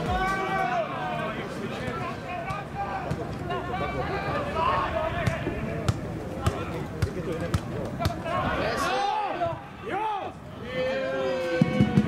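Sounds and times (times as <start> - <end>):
footballers shouting: 0.0 - 12.0.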